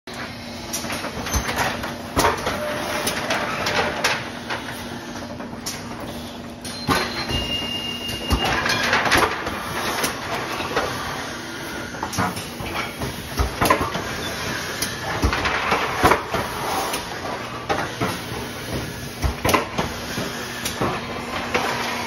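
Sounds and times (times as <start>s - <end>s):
mechanical clatter and knocks: 0.2s - 21.9s.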